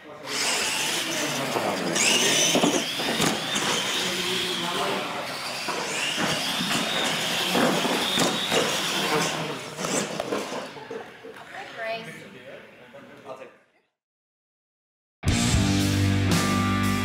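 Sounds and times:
electric motor and gear whine: 0.3 - 9.6.

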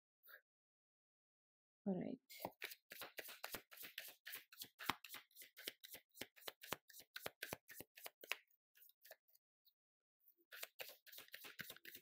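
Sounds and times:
cards being shuffled: 2.4 - 9.2, 10.5 - 12.0.

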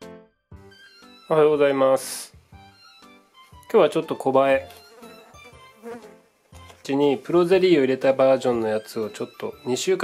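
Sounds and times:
faint background music: 0.5 - 10.0.

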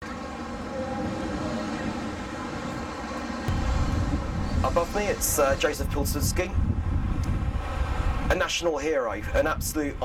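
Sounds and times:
distant engines humming: 0.0 - 8.9
deep rumble: 3.5 - 8.4.

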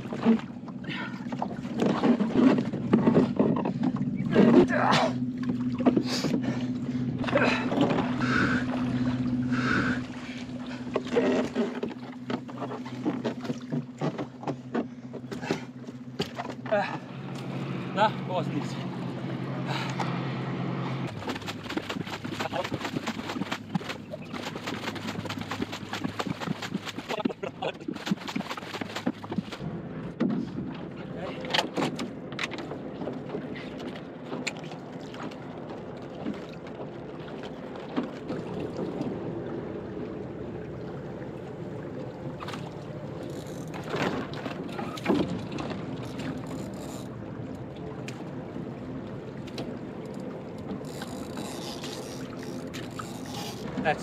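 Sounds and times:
gear knocking in boat: 0.0 - 20.2, 21.0 - 54.0
water splashing and lapping: 0.0 - 54.0.

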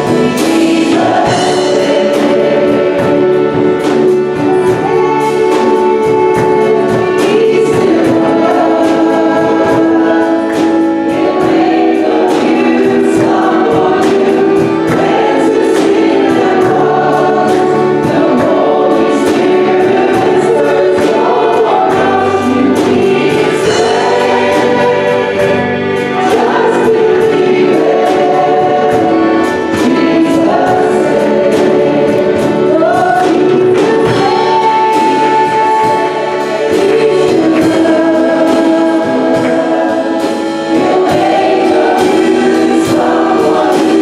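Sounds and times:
band accompaniment with beat: 0.0 - 44.0
women singing gospel song: 0.0 - 44.0.

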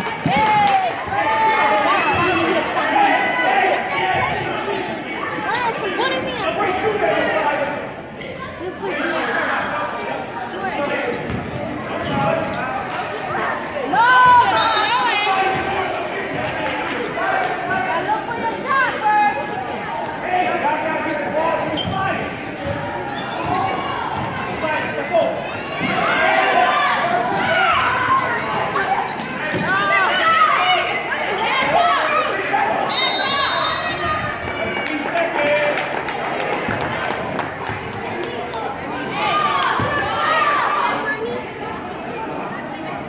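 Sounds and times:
players and spectators calling out: 0.0 - 43.0
voices echoing in gym: 0.0 - 43.0.

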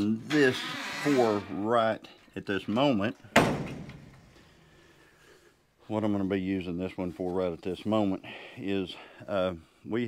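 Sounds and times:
screen door slamming shut: 3.4 - 4.2.

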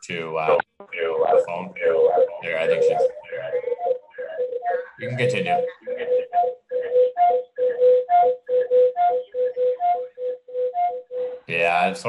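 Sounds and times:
rhythmic beeping over phone line: 0.0 - 12.0.

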